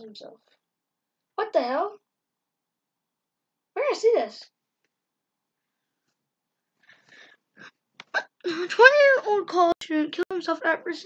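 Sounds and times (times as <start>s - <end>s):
faint breaths: 6.8s - 7.7s.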